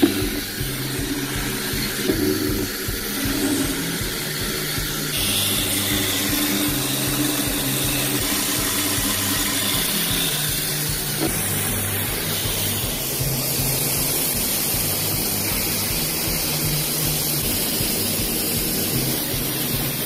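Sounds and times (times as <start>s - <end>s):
high-pressure water jet hissing: 0.0s - 20.0s.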